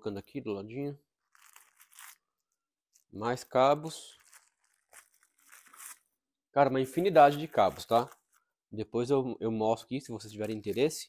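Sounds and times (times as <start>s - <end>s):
plastic packaging crinkling: 1.2s - 6.1s, 6.9s - 8.6s.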